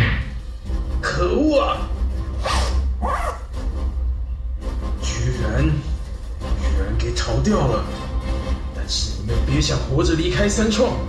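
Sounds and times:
zipper sound effects: 2.4 - 3.4.

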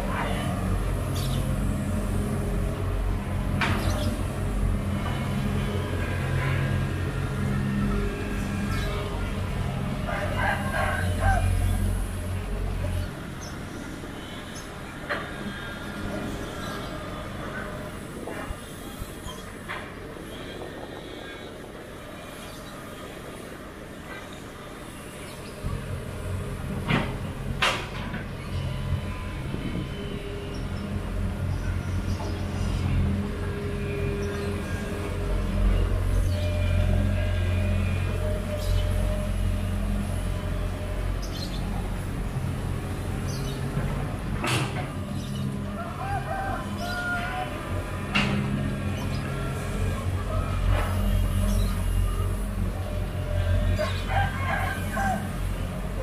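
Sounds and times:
excavator diesel engine: 0.0 - 20.3, 25.4 - 56.0.

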